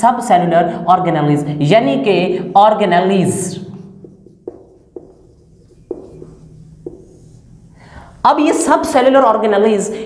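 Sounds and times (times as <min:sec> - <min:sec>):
marker tapping on whiteboard: 0:04.0 - 0:07.4
person breathing in: 0:07.7 - 0:08.2.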